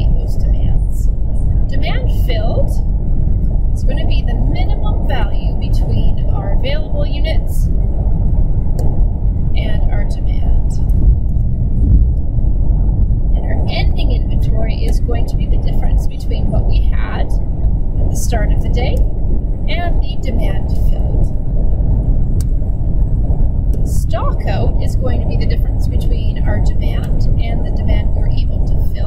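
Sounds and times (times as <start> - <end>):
low background rumble: 0.0 - 29.0.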